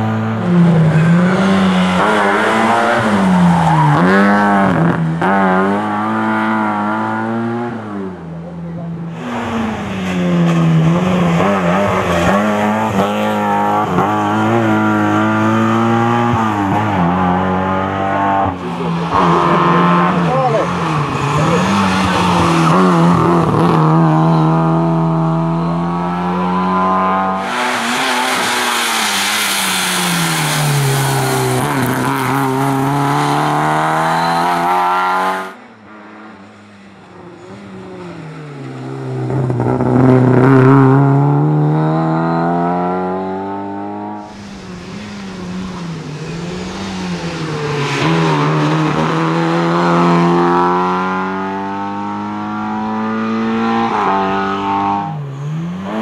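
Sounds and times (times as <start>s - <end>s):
rally car engine revving: 0.0s - 56.0s.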